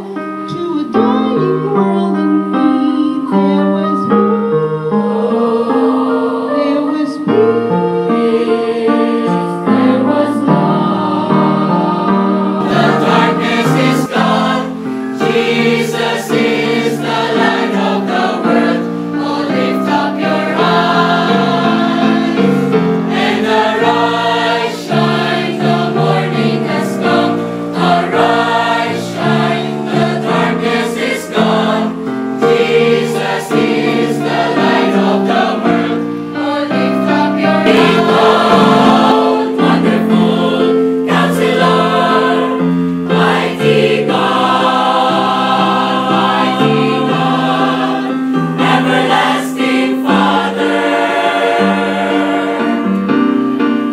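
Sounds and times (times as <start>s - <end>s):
mixed choir singing a hymn: 3.8s - 53.9s.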